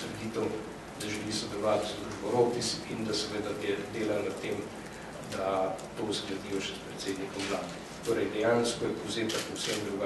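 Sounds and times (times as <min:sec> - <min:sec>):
man speaking into microphones: 0:00.0 - 0:10.0.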